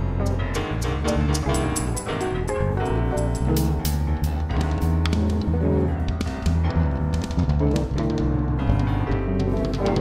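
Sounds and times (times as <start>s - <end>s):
deep bass notes: 0.0s - 10.0s
drum kit beating: 0.0s - 10.0s
sustained keyboard chords: 0.0s - 10.0s.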